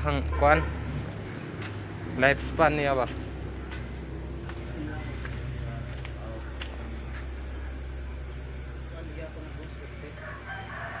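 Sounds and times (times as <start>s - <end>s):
steady low rumble: 0.0s - 10.5s
rooster crowing: 10.1s - 11.0s.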